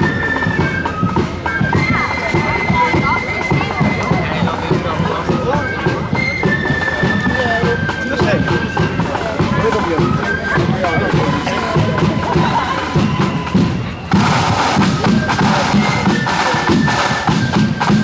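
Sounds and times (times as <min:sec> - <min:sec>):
flute band playing: 0:00.0 - 0:18.0
people talking: 0:00.0 - 0:18.0.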